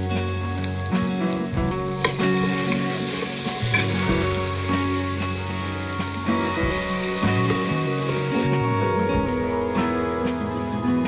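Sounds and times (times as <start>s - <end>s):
chickpeas sizzling in oil: 0.0s - 8.6s
background music: 0.0s - 11.0s
ladle stirring: 1.9s - 8.5s.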